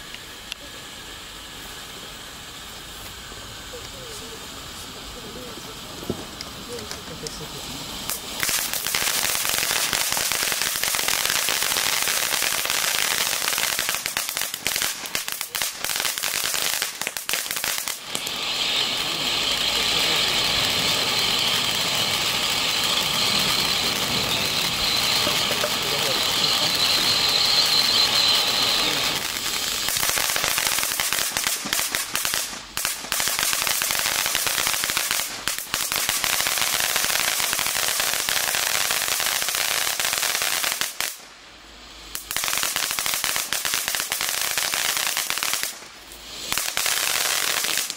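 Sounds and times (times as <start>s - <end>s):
firework fountain hissing: 0.0s - 47.9s.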